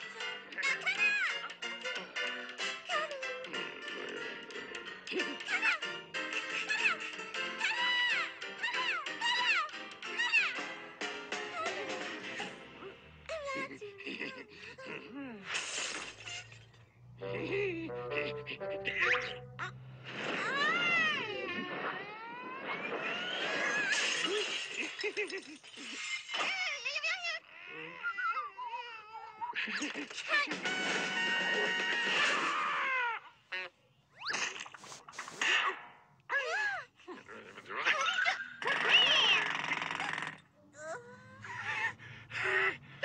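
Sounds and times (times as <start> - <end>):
cartoon dog yelping and whining: 0.1 - 2.2, 5.1 - 6.0, 6.6 - 10.6, 17.4 - 24.3, 26.4 - 29.7, 35.5 - 39.5, 40.8 - 42.8
cartoon dog howling: 20.4 - 24.0, 32.1 - 33.2, 40.8 - 42.8.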